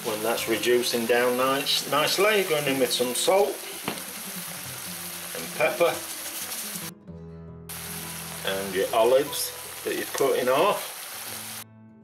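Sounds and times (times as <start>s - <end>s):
vegetables sizzling in a frying pan: 0.0s - 6.9s, 7.7s - 11.6s
quiet background music: 0.0s - 12.0s.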